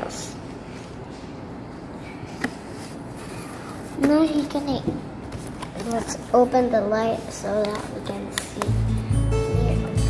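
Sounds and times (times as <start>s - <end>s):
child's voice: 4.0s - 5.0s, 5.8s - 8.8s, 9.4s - 10.0s.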